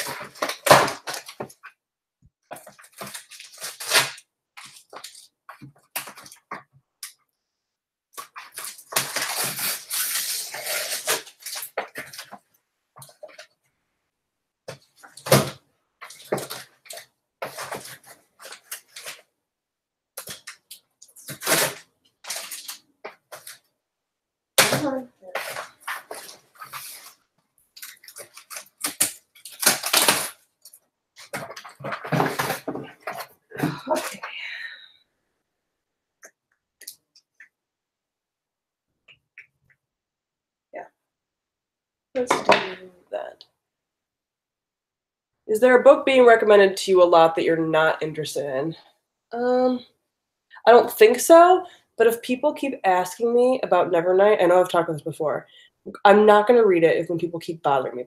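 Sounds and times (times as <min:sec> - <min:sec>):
rustling of books and box: 0:00.0 - 0:01.7, 0:02.5 - 0:06.7, 0:14.7 - 0:19.3, 0:24.8 - 0:27.2, 0:31.2 - 0:34.3
knocks of books and box: 0:31.3 - 0:33.3.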